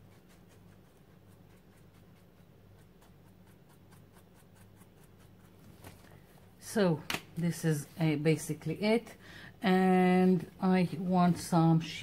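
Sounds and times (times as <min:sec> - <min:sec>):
brush dabbing paint on tissue paper: 0:00.0 - 0:06.4
faint steady hum: 0:00.0 - 0:12.0.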